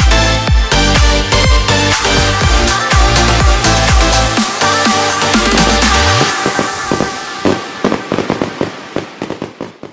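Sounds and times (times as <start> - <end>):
dance music: 0.0 - 8.4
fireworks bangs and crackles: 3.7 - 9.9.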